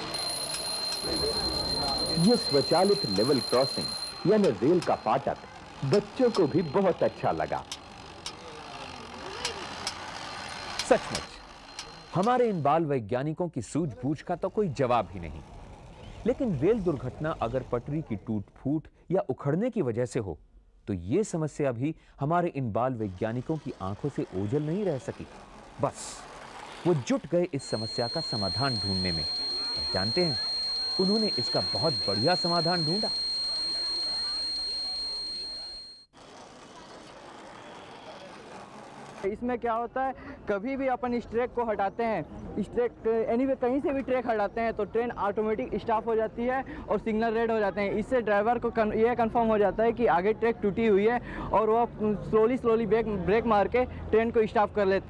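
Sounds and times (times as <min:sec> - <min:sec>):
model train motor running: 0:00.0 - 0:12.7, 0:14.2 - 0:18.1, 0:22.9 - 0:39.3.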